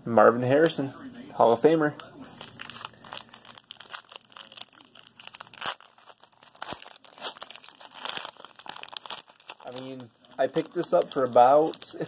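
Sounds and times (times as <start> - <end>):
foil wrapper crinkling and tearing: 2.3 - 12.0.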